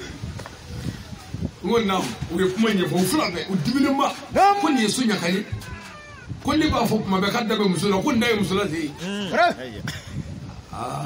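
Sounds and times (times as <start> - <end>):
man preaching over microphone: 1.6 - 9.9
faint high cry falling in pitch: 5.3 - 6.4.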